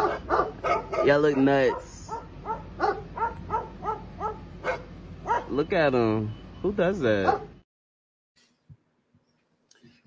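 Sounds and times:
dog barking: 0.0 - 5.6, 7.2 - 7.6.

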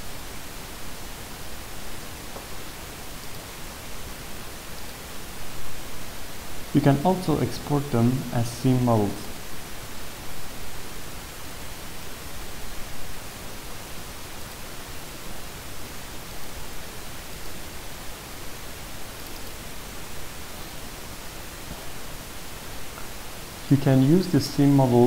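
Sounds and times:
background hiss: 0.0 - 25.0.

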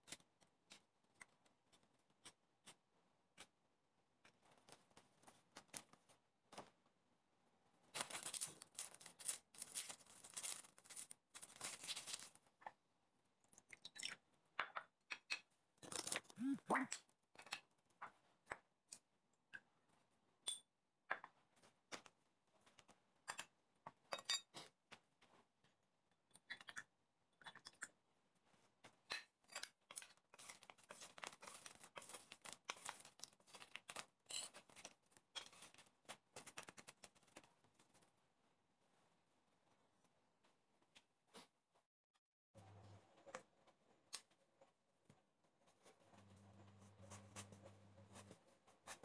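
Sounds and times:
wet rustling of vegetables: 8.0 - 12.4.

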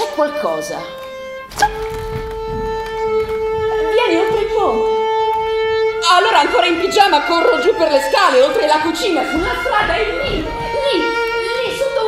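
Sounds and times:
violin long bowed notes: 0.0 - 12.0.

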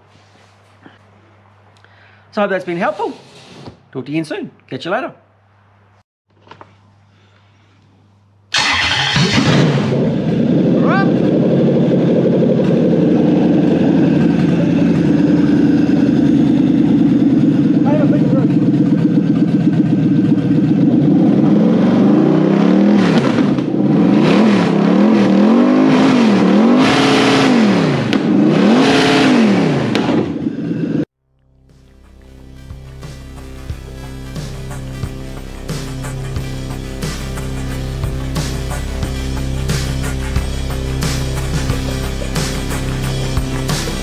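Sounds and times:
engine starting and idling: 8.5 - 21.4
engine revving: 8.6 - 44.0.

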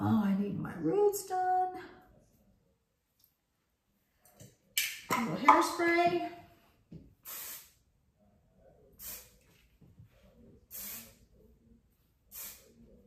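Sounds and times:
aerosol can spraying: 7.2 - 7.8, 10.7 - 11.2, 12.3 - 12.7.

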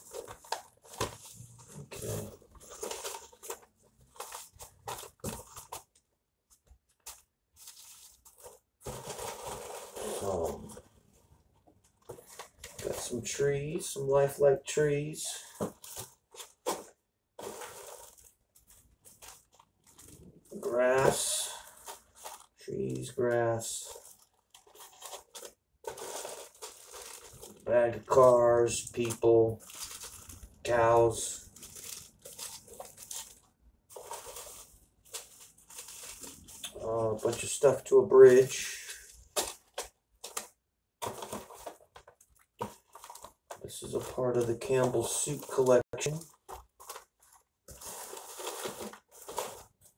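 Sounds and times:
plastic bag crinkling: 15.4 - 23.1, 23.8 - 37.7, 38.4 - 49.9.

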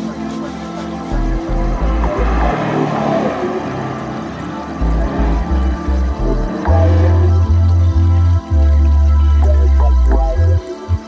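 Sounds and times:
car accelerating past: 1.1 - 7.7.

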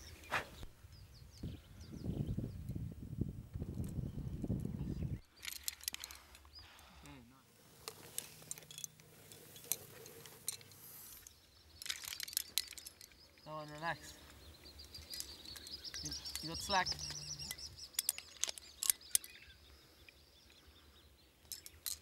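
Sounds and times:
climbing hardware clinking: 5.4 - 6.6, 7.8 - 19.5, 21.4 - 22.0.

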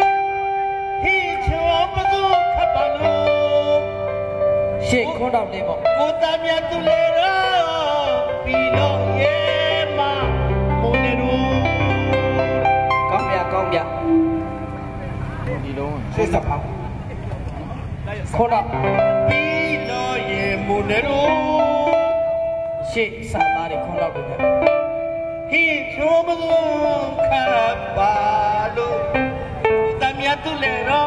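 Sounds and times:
performers singing and calling: 5.8 - 15.6, 18.6 - 24.4, 25.5 - 31.0.

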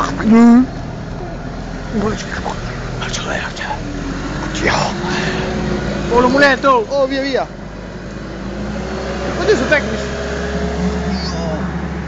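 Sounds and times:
low outdoor background hum: 0.0 - 12.0.

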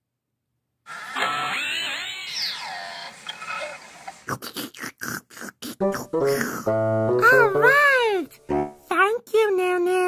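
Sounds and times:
squeaky warbling noises: 1.4 - 4.8.

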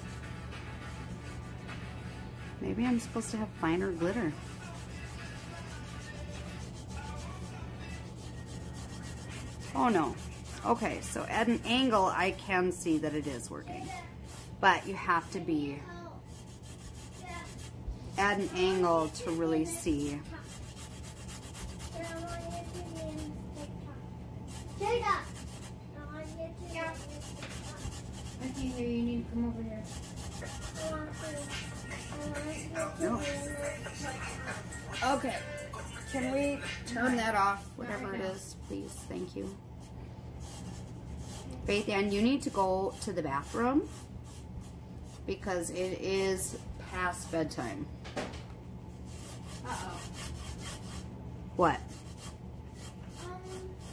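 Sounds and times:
gloved fingers rubbing glitter tumbler: 0.0 - 15.4, 16.2 - 23.6, 24.4 - 25.8, 26.7 - 28.9, 29.8 - 47.8, 49.0 - 53.9
constant low hum: 0.0 - 53.9
gloved fingertips rubbing glitter: 4.2 - 10.7.

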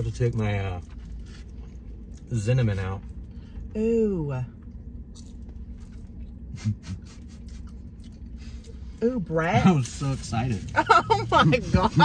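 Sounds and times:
chewing food: 0.0 - 3.4, 4.6 - 6.5, 7.1 - 8.8
low hum in vehicle cab: 0.0 - 12.0.

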